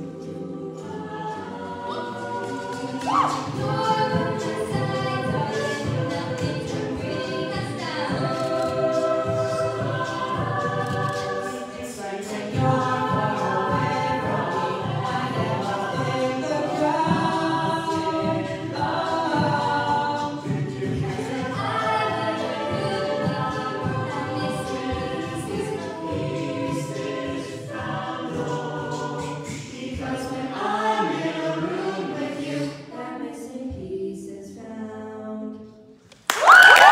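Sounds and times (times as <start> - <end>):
solo voices singing: 0.0 - 35.7
group singing backing harmonies: 0.0 - 36.1.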